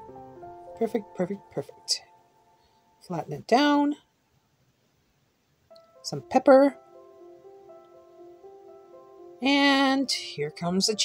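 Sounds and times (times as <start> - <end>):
faint background music: 0.0 - 4.7, 5.5 - 11.0.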